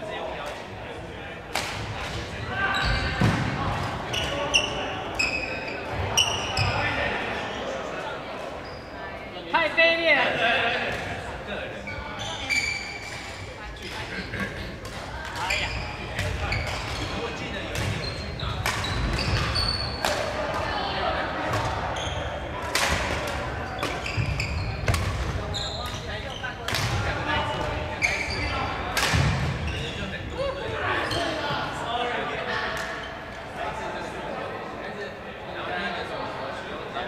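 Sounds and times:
sneakers squeaking: 1.8s - 7.1s, 8.4s - 9.2s, 11.8s - 20.8s, 21.4s - 31.8s
rackets striking shuttlecocks: 24.8s - 26.0s.

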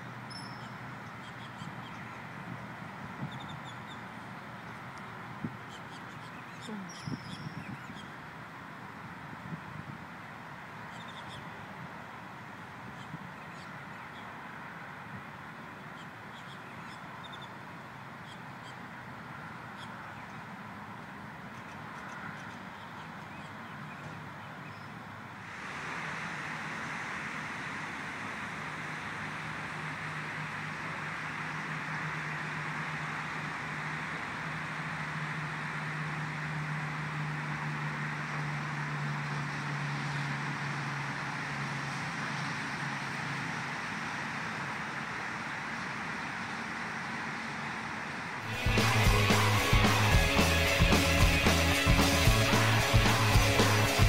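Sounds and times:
distant traffic: 0.0s - 54.0s
short bird calls: 5.7s - 8.2s.

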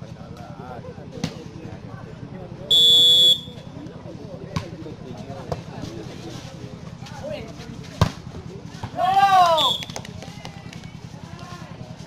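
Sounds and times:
crowd voices: 0.0s - 12.0s
referee's whistle blast: 2.7s - 3.6s, 9.5s - 10.0s.

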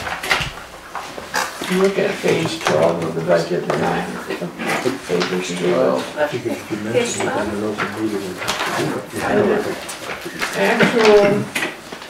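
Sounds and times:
low murmured talk: 1.6s - 11.6s.

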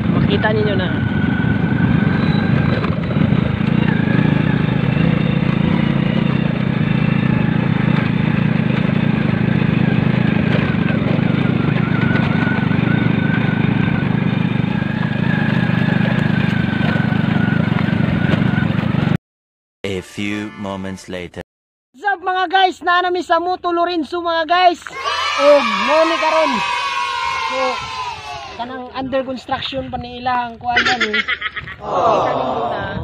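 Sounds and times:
small motorcycle engine running: 0.0s - 19.2s.

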